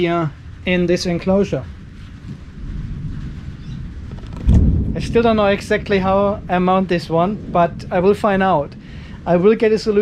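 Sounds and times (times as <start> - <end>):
heavy low thump: 2.2 - 6.4
camera handling rumble: 4.0 - 4.7.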